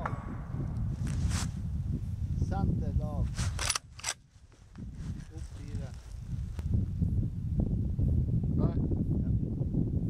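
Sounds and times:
rifle bolt metallic clicks: 3.5s - 4.2s.

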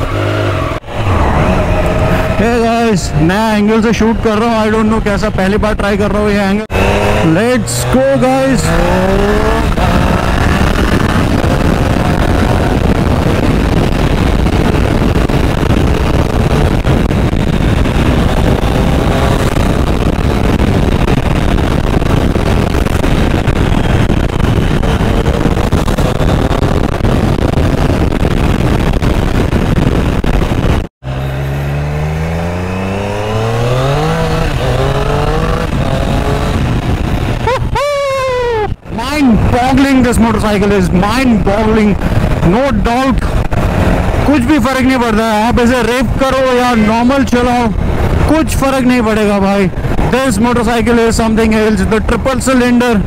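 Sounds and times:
motorcycle engine accelerating: 0.0s - 52.7s
wind noise on microphone: 0.0s - 53.0s.

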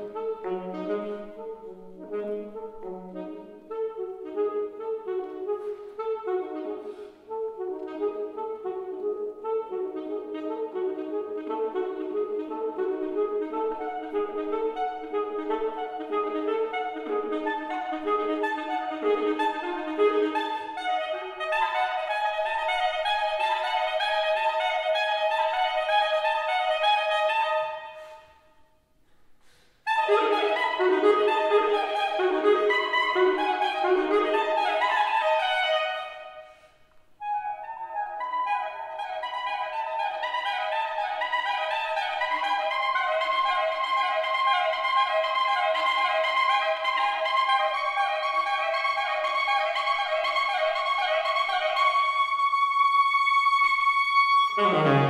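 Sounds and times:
saxophone playing fast runs: 0.0s - 28.2s, 29.9s - 36.5s, 37.2s - 55.0s.

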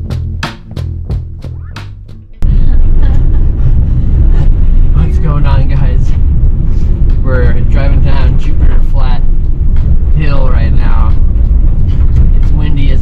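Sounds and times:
loud low rumble: 0.0s - 13.0s.

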